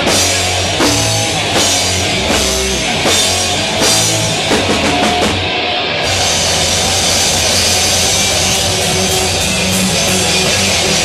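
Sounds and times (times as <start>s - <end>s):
live punk band playing: 0.0s - 11.0s.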